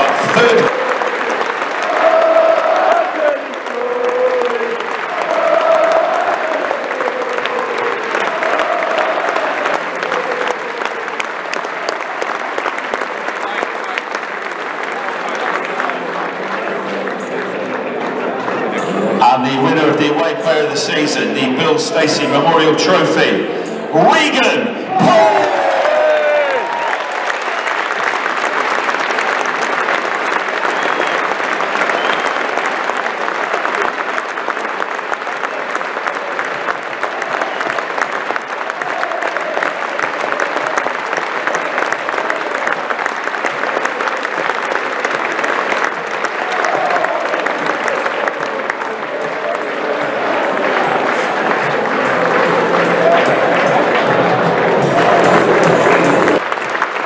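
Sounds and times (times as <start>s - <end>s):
crowd voices: 0.0s - 57.0s
stadium crowd applauding: 0.0s - 57.0s.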